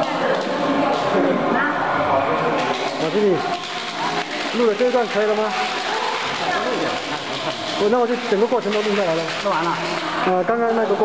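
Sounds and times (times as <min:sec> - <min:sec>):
people speaking in background: 0:00.0 - 0:11.0.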